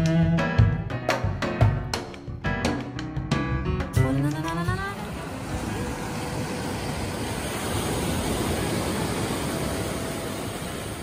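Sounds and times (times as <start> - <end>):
ocean surf breaking on beach: 4.4 - 11.0.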